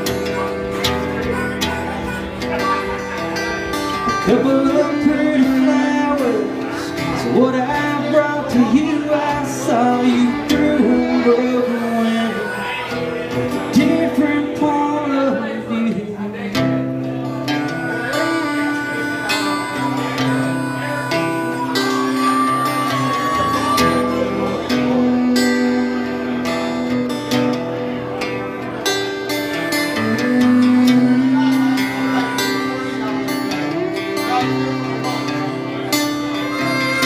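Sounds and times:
fiddle melody: 0:00.0 - 0:15.6, 0:16.9 - 0:37.0
harmonica melody: 0:00.0 - 0:15.8, 0:16.7 - 0:37.0
acoustic guitar strumming: 0:00.0 - 0:37.0.

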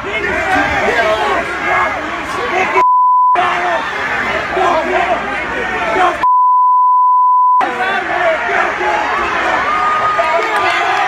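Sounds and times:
crowd shouting: 0:00.0 - 0:02.8, 0:03.4 - 0:06.2, 0:07.6 - 0:11.0
electronic censor beep: 0:02.8 - 0:03.4, 0:06.2 - 0:07.6.

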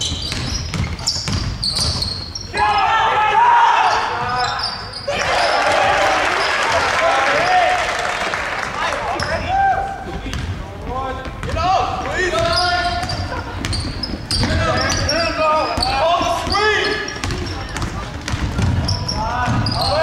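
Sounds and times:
basketball dribbling on hardwood: 0:00.0 - 0:02.0, 0:17.2 - 0:19.7
people shouting: 0:02.5 - 0:08.1.

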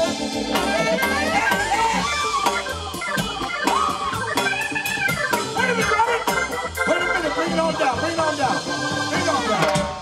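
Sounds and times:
bass: 0:00.0 - 0:10.0
congas: 0:00.0 - 0:10.0
drum kit: 0:00.0 - 0:10.0
organ-like keyboard lead: 0:00.0 - 0:10.0.

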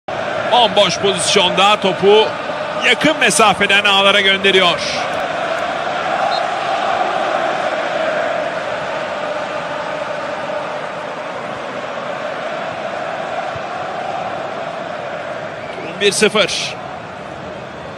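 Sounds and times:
stadium crowd chanting and cheering: 0:00.1 - 0:17.9.

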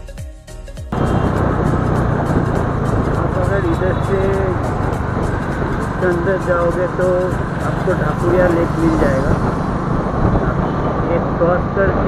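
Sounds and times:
background music: 0:00.0 - 0:11.6
motorcycle rumble: 0:00.9 - 0:12.0
wind noise on microphone: 0:00.9 - 0:12.0
person speaking: 0:05.8 - 0:09.4.

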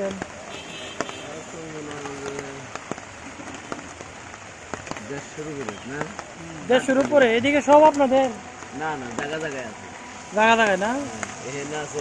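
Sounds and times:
rain hissing on a tarpaulin: 0:00.0 - 0:12.0.

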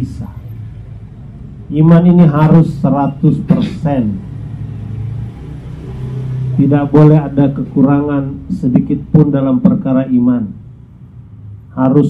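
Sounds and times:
speech: 0:00.0 - 0:00.4, 0:01.7 - 0:04.2, 0:06.6 - 0:10.6, 0:11.7 - 0:12.0
low rumble and hum: 0:00.0 - 0:04.9.

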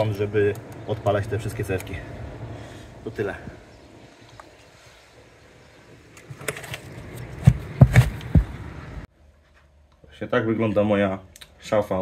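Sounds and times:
outdoor background noise: 0:00.0 - 0:12.0
knocks and low thumps: 0:07.3 - 0:08.8.

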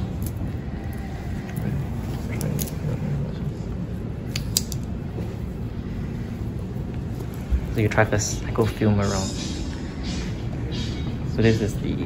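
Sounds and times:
shop interior hum: 0:00.0 - 0:12.0.

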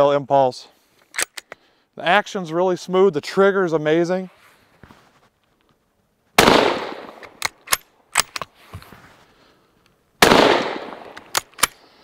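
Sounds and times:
rifle bolt metallic clicks: 0:01.0 - 0:01.6, 0:07.2 - 0:08.5, 0:10.6 - 0:11.9
rifle shots: 0:06.4 - 0:08.4, 0:10.2 - 0:11.8.

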